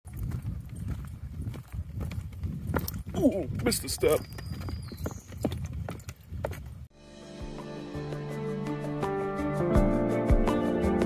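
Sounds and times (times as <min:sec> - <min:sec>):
footsteps on wooden boardwalk: 0:00.1 - 0:06.9.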